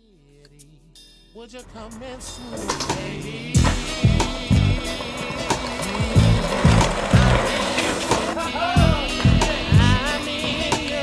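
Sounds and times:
hip-hop music with kick drum: 0.0s - 11.0s
skateboard wheels on concrete: 1.6s - 11.0s.

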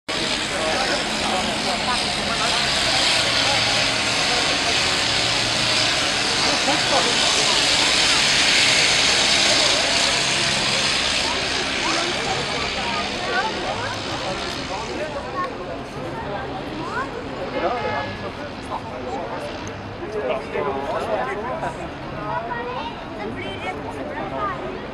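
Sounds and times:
propeller plane passing overhead: 0.1s - 24.9s.

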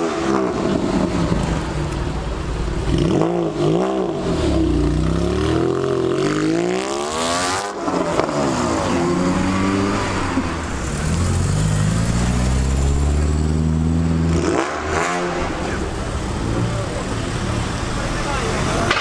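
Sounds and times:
cars accelerating past: 2.8s - 19.0s.

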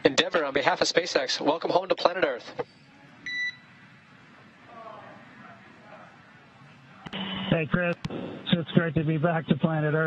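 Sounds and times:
radio hiss: 7.1s - 8.9s.

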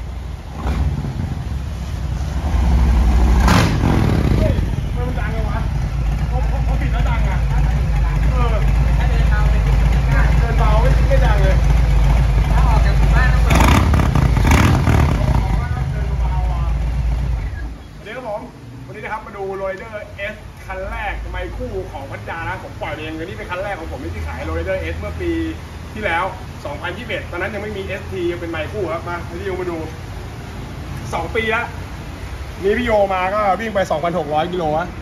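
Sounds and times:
motorcycle engine idling and revving: 0.0s - 32.8s.

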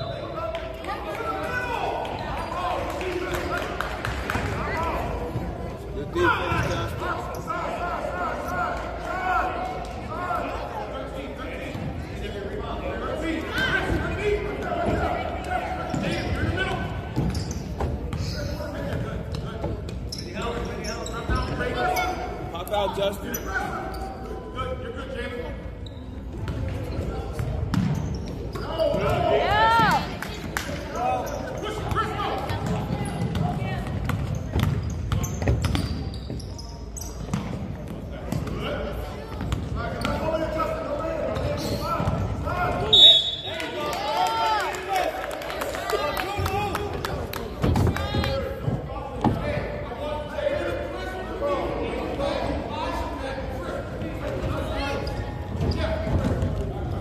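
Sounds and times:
shoes squeaking on court: 15.8s - 22.4s, 32.6s - 38.6s, 39.4s - 40.3s, 54.4s - 56.6s.

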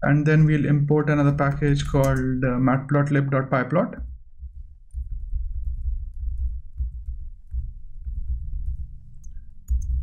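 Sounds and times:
typing on computer keyboard: 1.2s - 2.3s, 4.9s - 10.0s.

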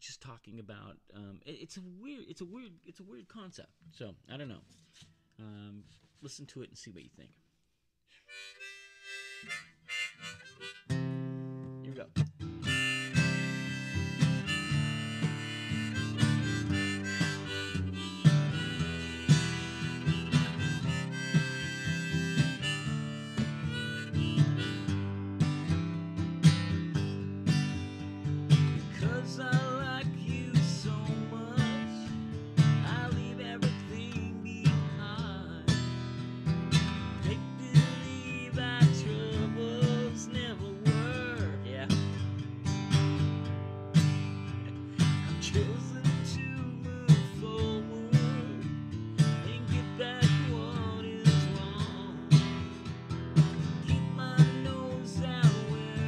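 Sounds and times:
harmonica playing: 8.2s - 11.6s, 12.5s - 26.1s
acoustic guitar strummed: 8.3s - 56.0s.

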